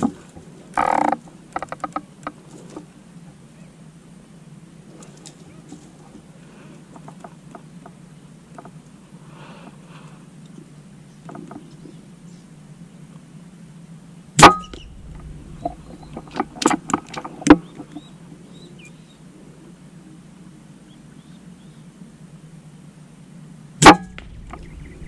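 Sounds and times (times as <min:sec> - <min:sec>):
air rifle shots: 0:23.8 - 0:25.0.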